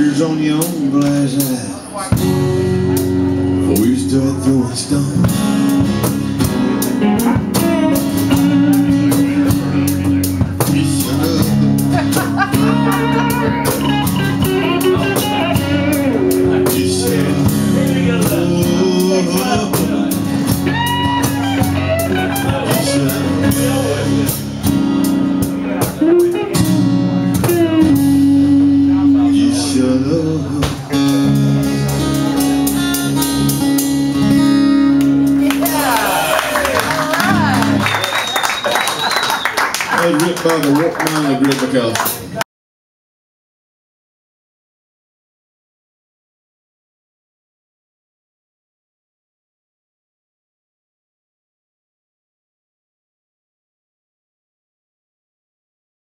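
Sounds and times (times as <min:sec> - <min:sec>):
strummed acoustic guitar: 0:00.0 - 0:35.9
electric guitar lead lines: 0:00.0 - 0:39.6.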